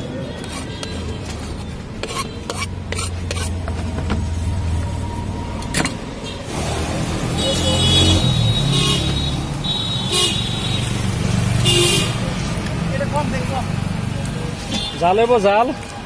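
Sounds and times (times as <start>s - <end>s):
high-pitched horn toots: 7.3s - 10.6s.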